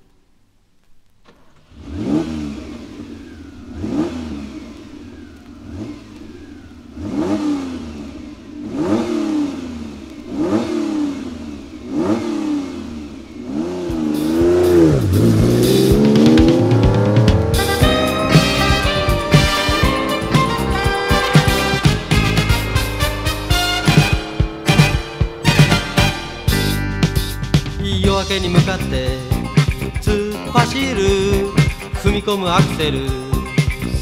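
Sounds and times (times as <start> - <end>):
car engine revving: 1.2 - 34.0
band with cymbals: 13.9 - 34.0.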